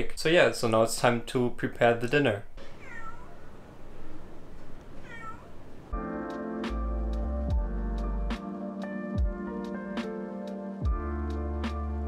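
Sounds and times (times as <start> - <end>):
music: 5.9 - 12.0.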